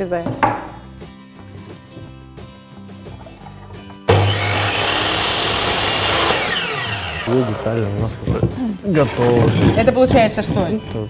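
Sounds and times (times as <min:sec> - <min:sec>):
soft background music: 0:00.0 - 0:04.1, 0:06.8 - 0:11.0
miter saw cutting wood: 0:04.1 - 0:08.4.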